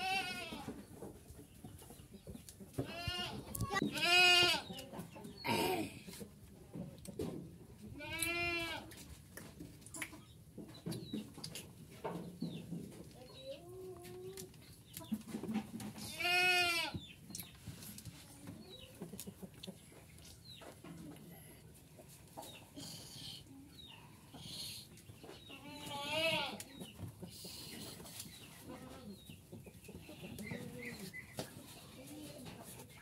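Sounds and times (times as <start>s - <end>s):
goats bleating loudly: 0.0s - 0.6s, 2.9s - 4.6s, 8.0s - 8.8s, 16.1s - 16.9s, 25.6s - 26.6s.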